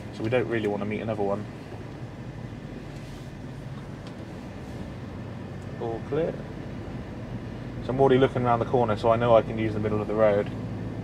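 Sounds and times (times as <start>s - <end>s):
diesel engine drone: 0.0s - 11.0s
tyre and road noise: 0.0s - 11.0s.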